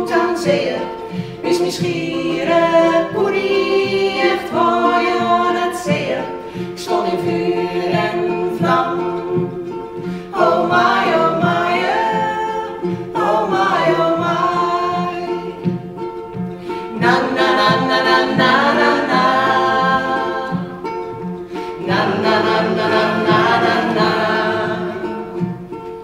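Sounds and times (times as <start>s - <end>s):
women singing in harmony: 0.0s - 25.7s
strummed ukuleles and guitar: 0.0s - 26.0s.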